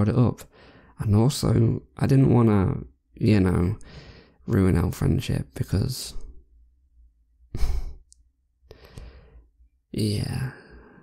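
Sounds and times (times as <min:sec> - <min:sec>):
man sighing: 0:07.5 - 0:08.1.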